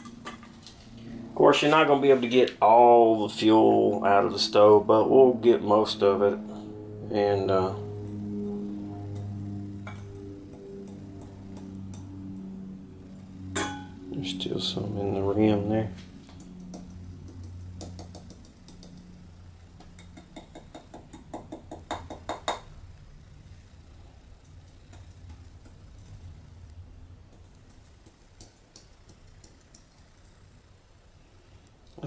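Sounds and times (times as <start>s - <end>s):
faint low hum: 0.0s - 32.0s.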